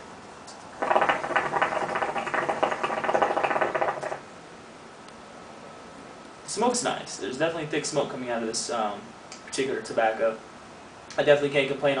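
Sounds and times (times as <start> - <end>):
hookah water bubbling: 0.7 - 4.3.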